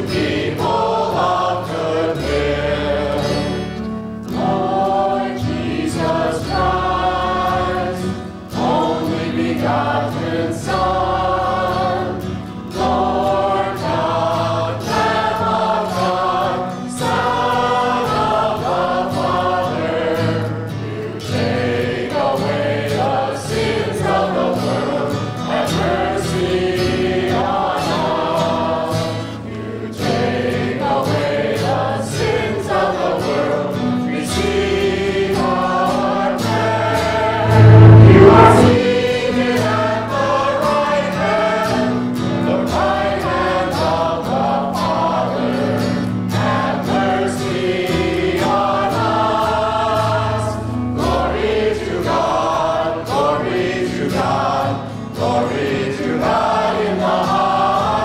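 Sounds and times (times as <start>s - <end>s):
church choir singing: 0.0s - 58.0s
sustained low accompaniment: 37.3s - 39.5s.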